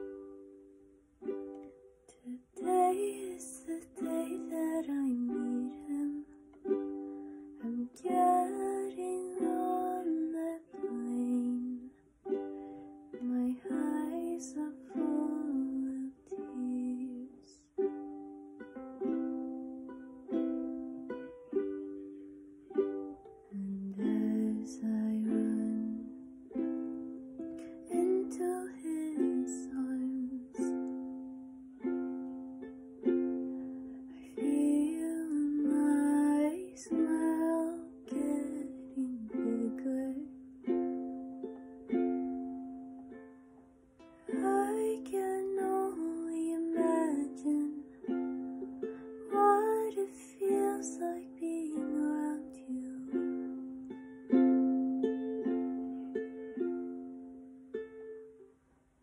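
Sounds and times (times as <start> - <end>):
ukulele playing slow tune: 0.0 - 59.0.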